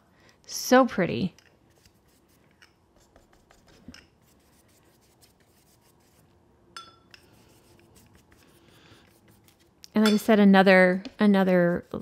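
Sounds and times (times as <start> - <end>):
paintbrush rubbing on paper: 1.7 - 6.3, 7.3 - 9.7, 10.9 - 12.0
ringing clink: 6.8 - 7.0.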